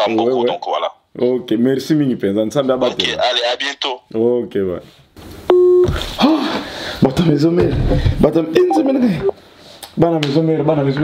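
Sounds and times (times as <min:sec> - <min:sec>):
short electronic beep: 0:08.6 - 0:09.4.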